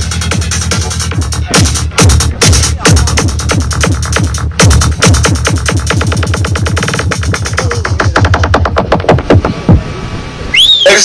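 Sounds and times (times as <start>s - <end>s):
deep bass sweeps: 0.0s - 10.6s
psytrance over sound system: 0.0s - 11.0s.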